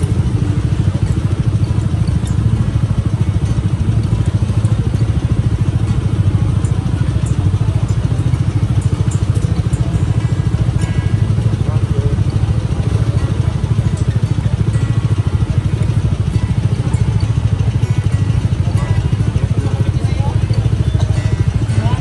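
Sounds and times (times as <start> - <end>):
motorcycle engine idling: 0.0 - 22.0.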